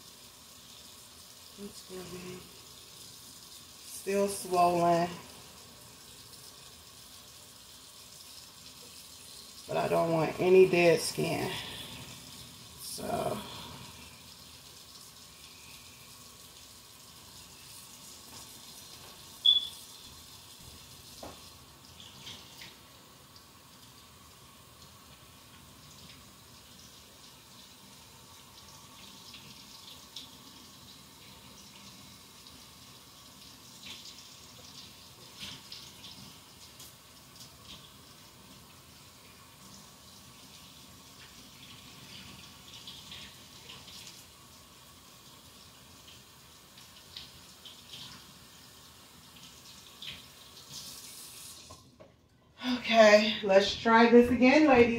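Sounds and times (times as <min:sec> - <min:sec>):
tap water running into sink: 0:00.0 - 0:52.1.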